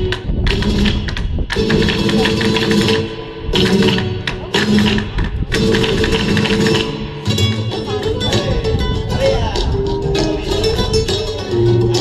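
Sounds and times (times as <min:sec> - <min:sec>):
sharp percussive strokes: 0:00.0 - 0:08.7
flamenco music: 0:00.0 - 0:12.0.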